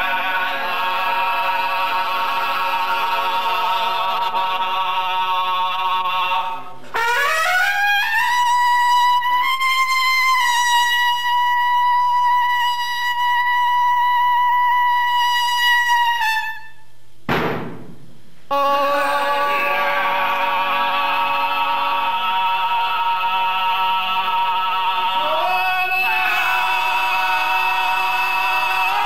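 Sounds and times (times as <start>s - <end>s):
men singing unaccompanied: 0.0s - 6.8s, 18.5s - 29.0s
long trumpet note: 18.5s - 20.7s.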